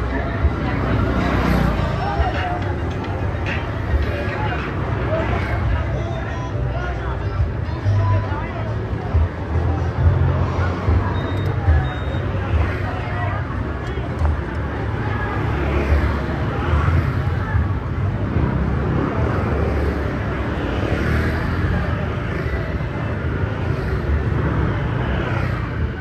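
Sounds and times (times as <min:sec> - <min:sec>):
low traffic rumble: 0:00.0 - 0:26.0
voices: 0:00.0 - 0:26.0
motor scooters passing: 0:14.2 - 0:26.0.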